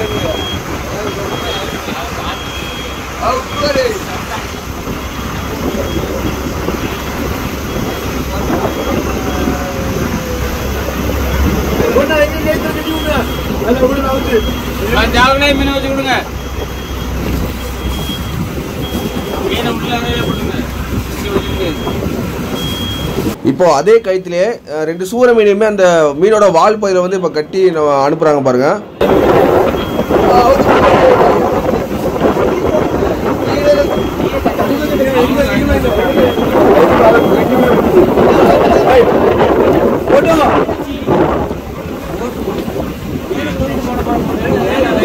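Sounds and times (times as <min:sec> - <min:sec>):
faint high beep: 0:00.0 - 0:04.0, 0:12.5 - 0:20.6, 0:21.3 - 0:23.2, 0:32.8 - 0:37.8
boat engine humming: 0:00.0 - 0:28.0, 0:28.6 - 0:45.0
water noise: 0:00.0 - 0:45.0
wind: 0:00.0 - 0:45.0.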